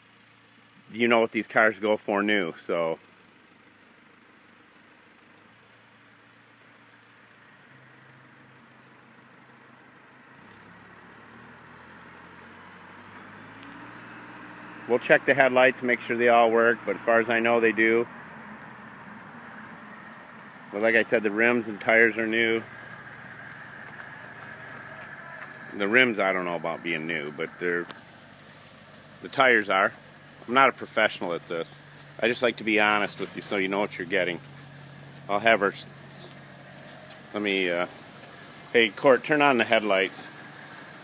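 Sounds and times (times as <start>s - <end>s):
car approaching on road: 0.0s - 41.0s.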